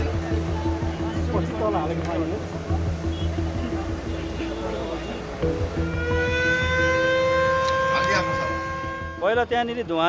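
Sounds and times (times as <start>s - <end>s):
siren wailing: 5.8s - 9.2s.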